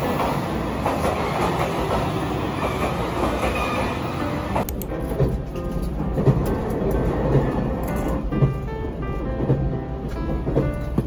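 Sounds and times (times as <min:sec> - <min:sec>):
train wheels rumbling over rails: 0:00.0 - 0:11.0.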